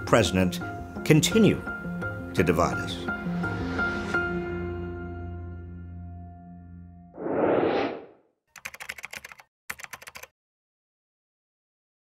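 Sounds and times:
computer keyboard typing: 8.6s - 10.3s.

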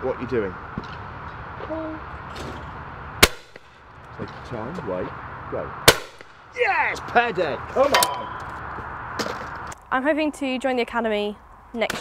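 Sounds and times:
shotgun shot: 3.2s - 3.8s, 5.8s - 6.4s.

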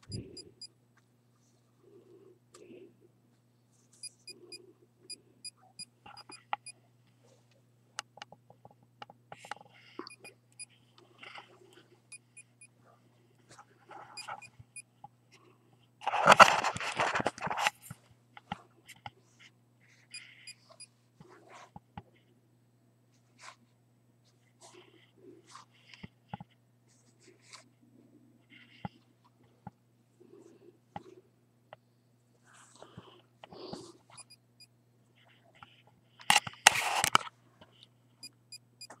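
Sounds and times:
faint low hum: 0.0s - 39.0s
rustling and scraping handling noise: 0.9s - 4.5s, 12.8s - 22.4s, 23.1s - 27.8s, 32.2s - 34.3s, 35.1s - 38.0s.

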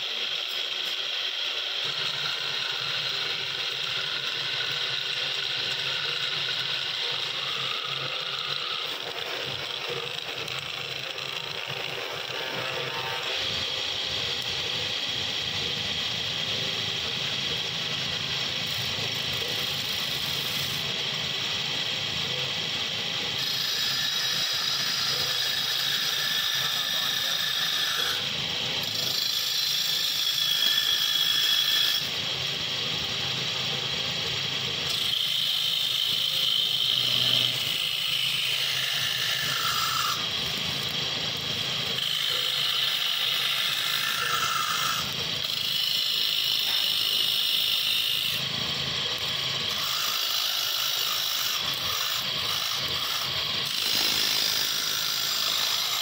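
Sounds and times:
wood lathe cutting: 0.0s - 56.0s.

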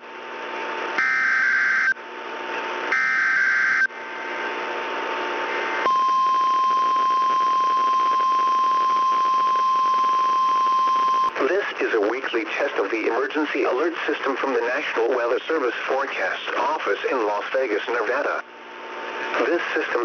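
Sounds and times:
steady warning alarm tone: 1.0s - 2.0s, 2.9s - 3.9s, 5.8s - 11.3s
receiver hiss: 4.2s - 20.0s.

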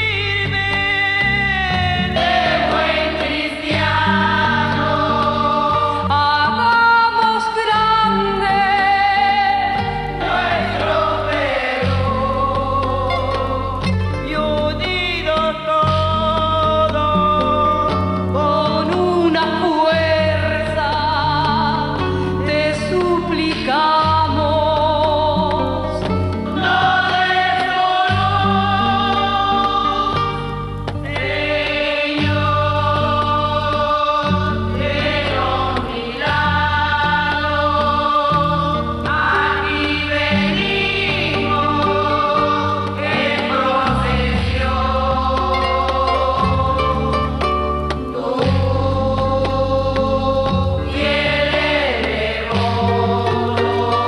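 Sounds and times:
instrumental accompaniment with bass: 0.0s - 54.0s
women's choir singing a hymn: 1.4s - 17.1s, 18.4s - 54.0s.

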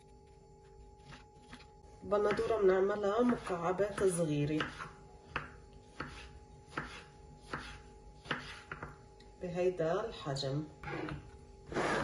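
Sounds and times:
knife chopping on wooden board: 3.2s - 9.0s.

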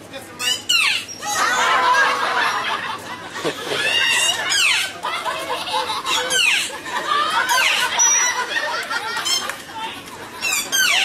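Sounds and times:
people talking and exclaiming: 0.0s - 11.0s.

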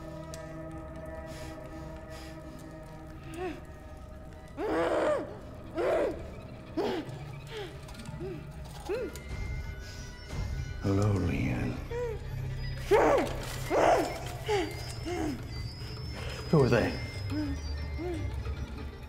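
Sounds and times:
music drone: 0.0s - 19.0s.

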